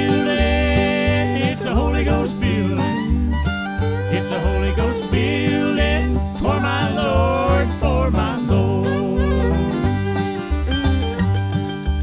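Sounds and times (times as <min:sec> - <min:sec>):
bluegrass gospel on acoustic guitars: 0:00.0 - 0:12.0.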